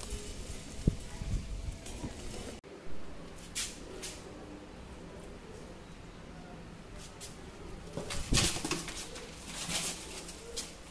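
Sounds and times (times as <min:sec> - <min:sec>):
pigeons cooing: 0:07.5 - 0:10.9.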